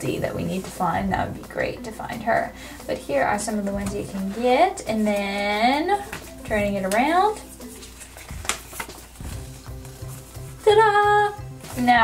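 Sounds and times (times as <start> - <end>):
soft background music: 0.0 - 12.0
paper leaflet crinkling: 3.1 - 12.0
paper crackle: 3.6 - 12.0.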